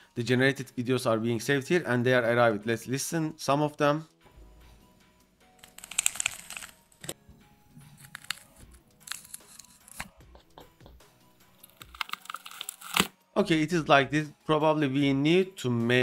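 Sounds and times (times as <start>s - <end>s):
crinkling and crunching: 5.6s - 7.2s, 7.8s - 10.1s, 11.6s - 13.1s.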